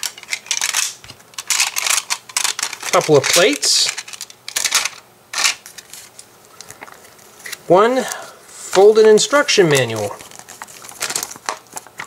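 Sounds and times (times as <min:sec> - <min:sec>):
paper booklet rustling: 0:01.5 - 0:04.3, 0:09.6 - 0:12.0.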